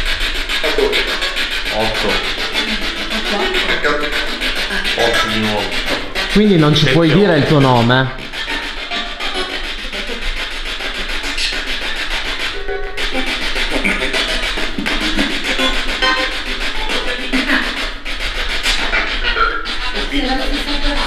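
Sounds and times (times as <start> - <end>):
radio static sweeping stations: 0.0 - 21.0
broadcast voice fragments: 0.6 - 8.3, 13.8 - 15.1.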